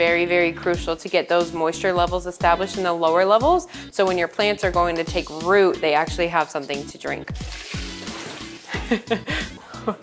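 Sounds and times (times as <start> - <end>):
water pouring and splashing: 7.3 - 9.0
laughter: 8.7 - 10.0.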